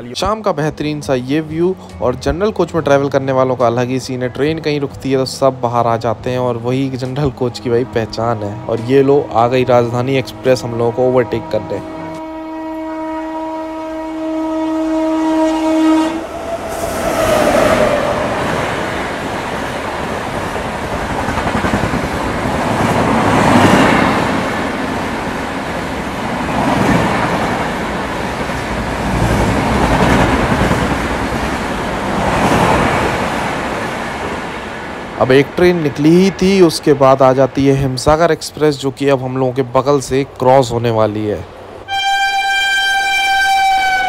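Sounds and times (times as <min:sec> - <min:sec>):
train passing with wheel clatter: 0:00.0 - 0:44.0
locomotive horn: 0:07.4 - 0:18.4, 0:41.8 - 0:44.0.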